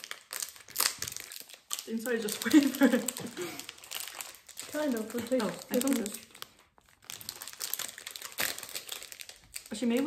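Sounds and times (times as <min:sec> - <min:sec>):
plastic wrappers crinkling: 0:00.0 - 0:10.0.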